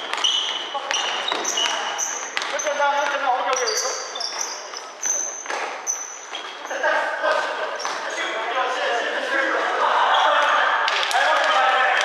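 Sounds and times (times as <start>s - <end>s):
players calling out: 6.7s - 12.0s.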